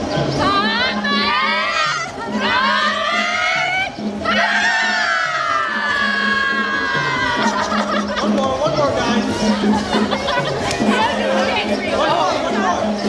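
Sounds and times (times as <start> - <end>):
group of people screaming: 4.2 - 7.8.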